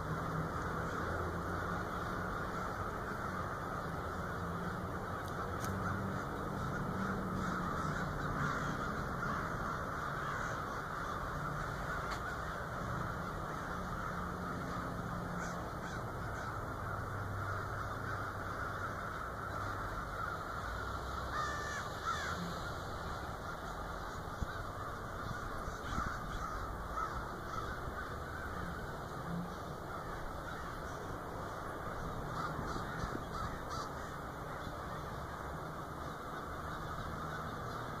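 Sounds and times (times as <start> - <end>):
crows cawing: 0.0 - 38.0.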